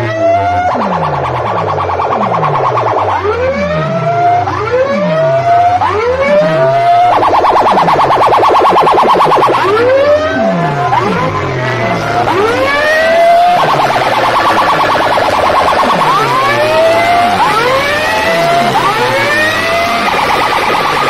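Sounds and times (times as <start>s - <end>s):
electronic siren whoops: 0.0s - 21.0s
low falling sweeps: 0.0s - 21.0s
rapid warbling pulse: 0.0s - 21.0s.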